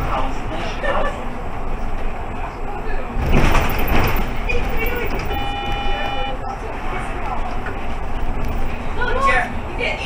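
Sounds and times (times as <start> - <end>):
bus driving rumble: 0.0 - 10.0.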